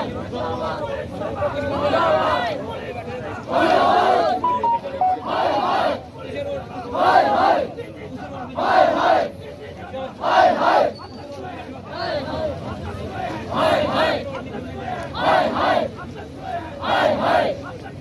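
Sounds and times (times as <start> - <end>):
crowd shouting slogans in unison: 0.0 - 4.4, 5.3 - 10.9, 11.9 - 17.7.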